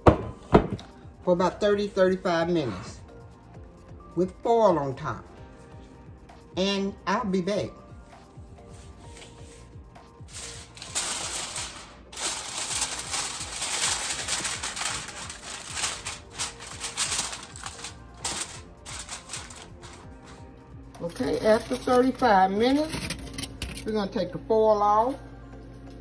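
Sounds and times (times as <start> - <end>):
faint background music: 0.0 - 26.0
aluminium foil crinkling: 10.2 - 20.4, 21.0 - 23.9.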